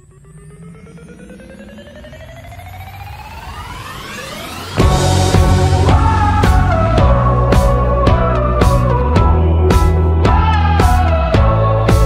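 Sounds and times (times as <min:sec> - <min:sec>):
rising music build-up: 0:00.0 - 0:12.0.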